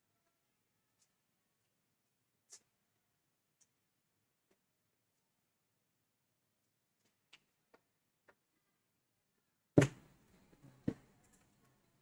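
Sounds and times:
loud thump: 9.8 - 10.0.

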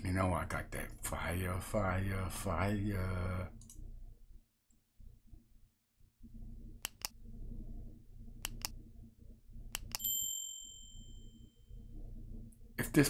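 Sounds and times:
faint low rumble: 0.2 - 10.0, 10.9 - 13.0
mouse clicks: 6.8 - 7.2, 8.4 - 8.8, 9.7 - 10.0.

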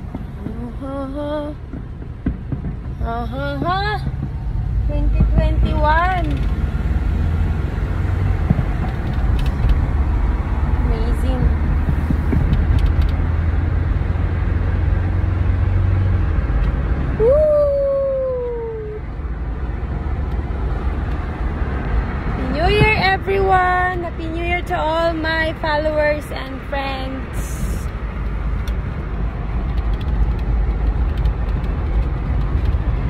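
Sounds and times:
car cabin road and engine rumble: 0.0 - 33.0.

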